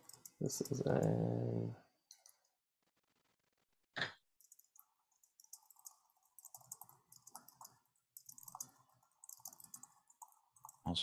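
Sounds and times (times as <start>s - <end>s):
fast typing on keyboard: 0.0s - 1.2s, 4.4s - 11.0s.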